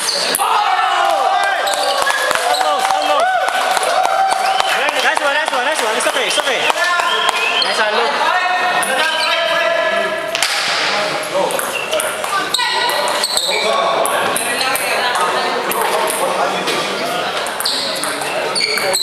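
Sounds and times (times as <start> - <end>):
people talking in echoing hall: 0.0 - 19.0
table tennis ball bouncing: 11.5 - 13.3, 17.4 - 19.0.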